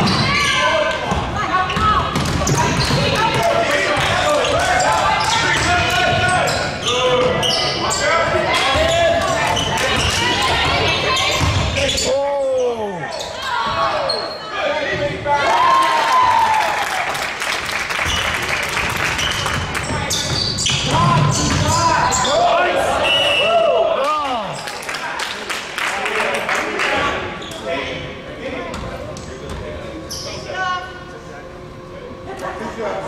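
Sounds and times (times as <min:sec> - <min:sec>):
sneakers squeaking on court: 0:01.1 - 0:03.4, 0:04.4 - 0:12.1, 0:19.0 - 0:22.4
basketball bouncing on wooden floor: 0:01.8 - 0:03.4.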